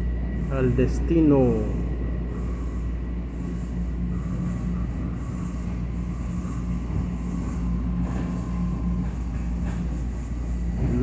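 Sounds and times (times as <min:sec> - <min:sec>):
train car rumble: 0:00.0 - 0:11.0.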